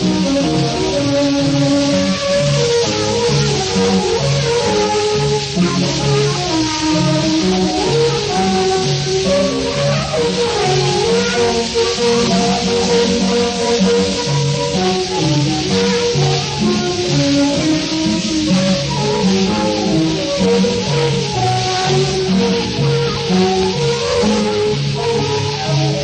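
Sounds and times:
record hiss: 0.0 - 26.0
small band playing lively tune: 0.0 - 26.0.

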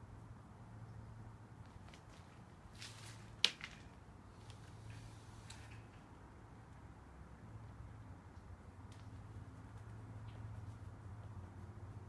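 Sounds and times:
steady low hum: 2.3 - 12.0.

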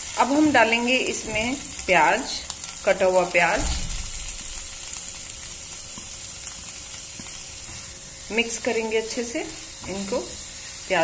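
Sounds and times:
onion sizzling in frying pan: 0.0 - 11.0.

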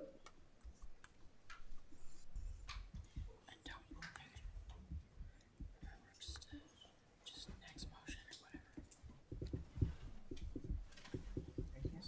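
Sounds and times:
whispering and murmured voices: 2.2 - 5.0, 5.6 - 9.0, 11.6 - 12.0.

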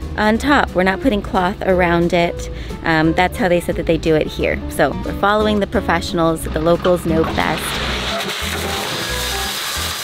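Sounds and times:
background music with bass: 0.0 - 10.0
gravel pouring from truck: 7.2 - 10.0.

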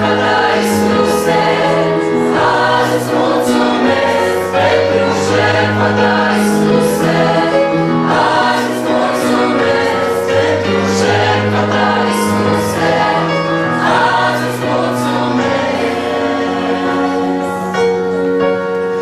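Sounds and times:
mixed choir singing a hymn: 0.0 - 18.7.

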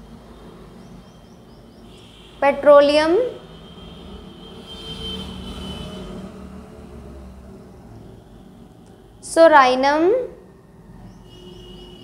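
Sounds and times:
vehicle rumbling past: 0.0 - 9.3, 10.4 - 12.0.

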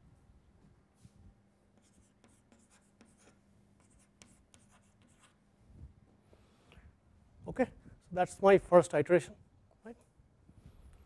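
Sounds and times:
chalk scratching on blackboard: 1.8 - 5.4.

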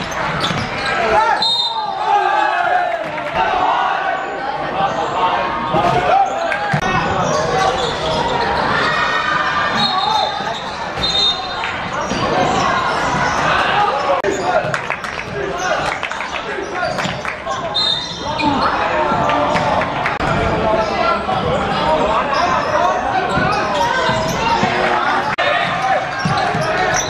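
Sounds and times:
basketball bouncing on court: 0.0 - 0.9, 25.5 - 27.0
sneaker squeaks: 0.0 - 2.0, 5.7 - 19.7, 20.8 - 27.0
people shouting and talking: 0.0 - 27.0.

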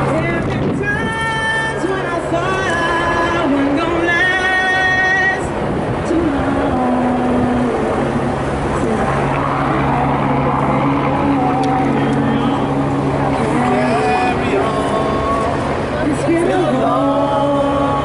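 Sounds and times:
large crowd noise: 0.0 - 18.0
voices singing long notes: 0.0 - 18.0.

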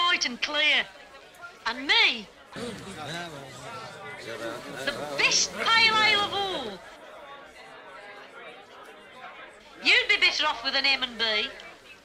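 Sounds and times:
faint chatter of voices: 0.0 - 12.0
woman speaking: 4.9 - 6.8.

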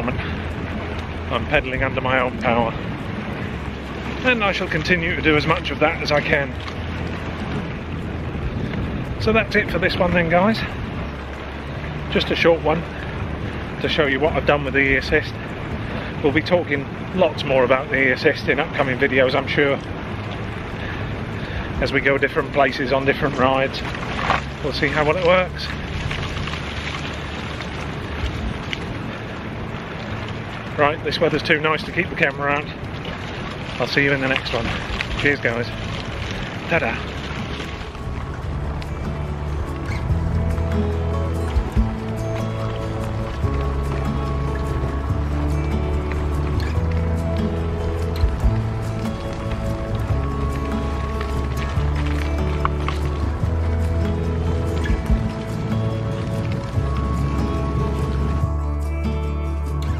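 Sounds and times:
background music with bass notes: 0.0 - 29.2, 33.8 - 59.9
tyres rolling over leaves: 0.0 - 59.9
wind on microphone: 0.0 - 59.9.

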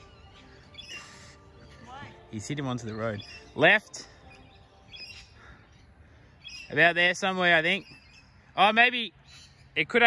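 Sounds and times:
high bird chirps: 0.0 - 1.8, 2.6 - 10.0
faint open-air background: 0.0 - 10.0.

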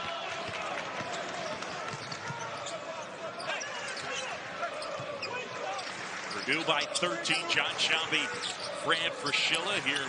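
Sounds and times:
crowd noise: 0.0 - 10.0
sneaker squeaks: 1.0 - 6.7, 8.3 - 8.8.

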